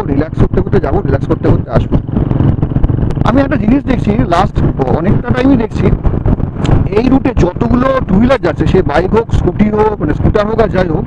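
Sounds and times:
motorcycle engine running: 0.0s - 11.0s
man talking loudly: 3.2s - 6.0s, 6.8s - 11.0s.

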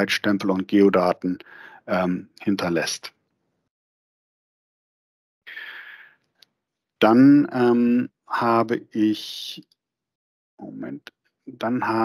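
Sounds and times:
man breathing in: 1.4s - 1.8s, 5.5s - 6.2s.

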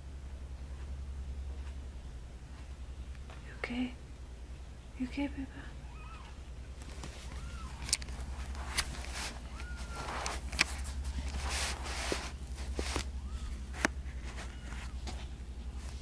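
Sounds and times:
steady low hum: 0.0s - 16.0s
newborn kittens mewing: 5.8s - 6.5s, 7.2s - 8.0s, 9.3s - 11.2s, 12.9s - 15.1s
absorbent pads rustling: 6.8s - 16.0s.

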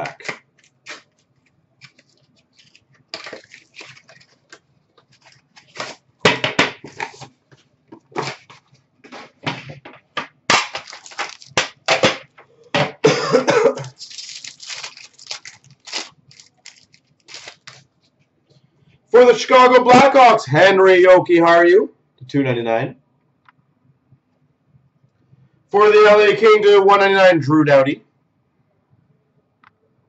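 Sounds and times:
foil wrapper crinkling and tearing: 0.0s - 6.1s, 6.8s - 7.3s, 8.1s - 9.4s, 10.5s - 12.0s, 13.8s - 18.1s.

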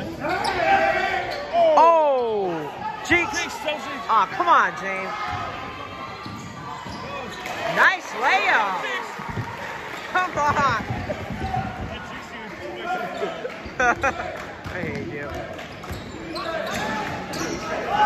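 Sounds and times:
spectators' voices: 0.0s - 18.0s
basketball bouncing on hardwood: 14.6s - 16.1s.

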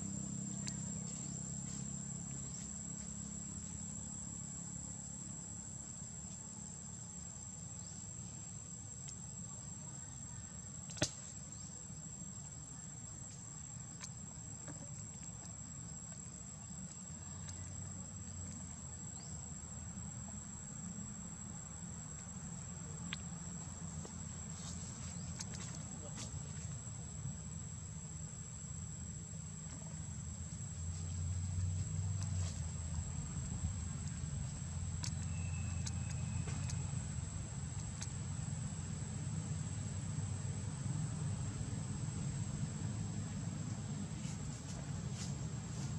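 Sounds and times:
low background rumble: 0.0s - 45.9s.

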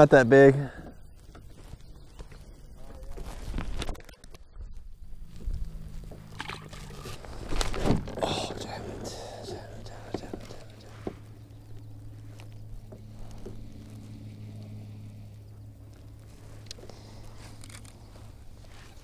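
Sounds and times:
steady low hum: 0.0s - 19.0s
fish splashing into water: 6.3s - 7.2s.

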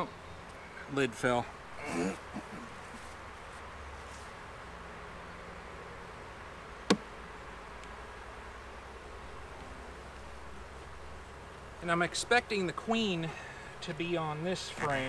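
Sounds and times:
honeybees buzzing: 0.0s - 15.0s.

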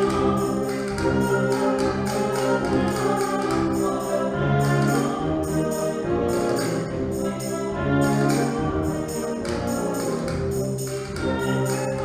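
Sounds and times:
brass instruments: 0.0s - 12.0s
double bass: 0.0s - 12.0s
saxophones: 0.0s - 12.0s
tuba: 0.0s - 12.0s.

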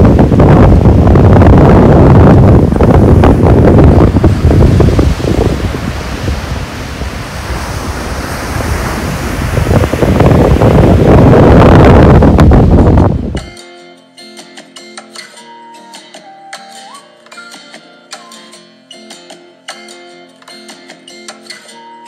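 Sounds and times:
surf breaking on shore: 0.0s - 13.4s
wind buffeting microphone: 0.0s - 13.5s.

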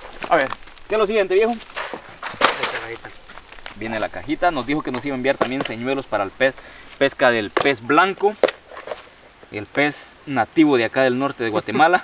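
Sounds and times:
packaging rustling: 0.0s - 7.9s
voices: 0.0s - 12.0s.

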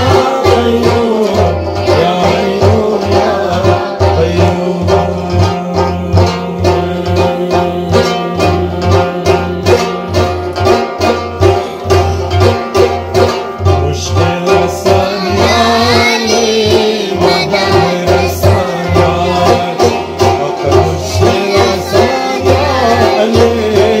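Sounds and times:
man singing: 0.0s - 10.6s, 13.6s - 24.0s
frame drum beat: 0.0s - 24.0s
plucked lute: 0.0s - 24.0s.

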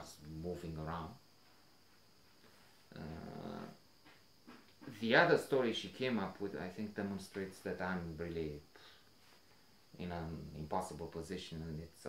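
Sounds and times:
man saying uh: 2.9s - 3.8s.

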